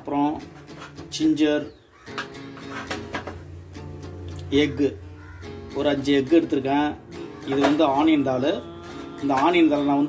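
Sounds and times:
acoustic guitar music: 0.0s - 10.0s
person talking: 5.7s - 10.0s.

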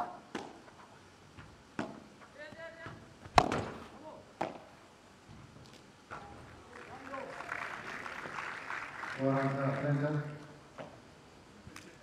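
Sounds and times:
padel ball hits: 3.3s - 3.8s.

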